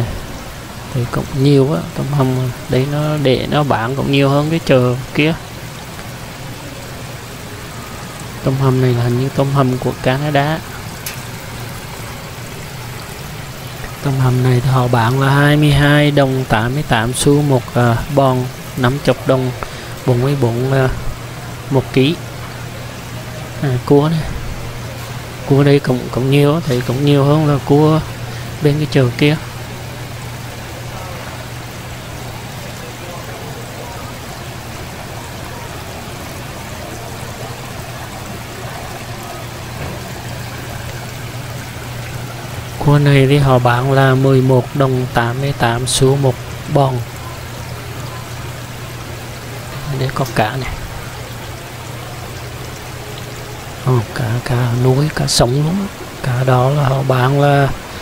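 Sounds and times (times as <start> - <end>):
water jets splashing into tank: 0.0 - 58.0.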